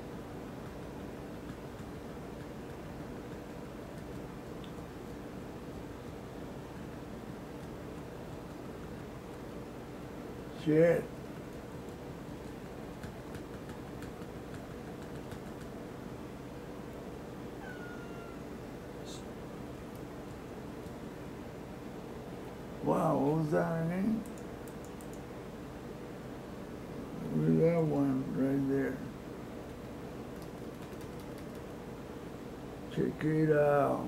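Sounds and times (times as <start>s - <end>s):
low background hum: 0.0s - 34.0s
cat meowing: 17.6s - 18.5s
faint light clicks: 24.2s - 25.3s.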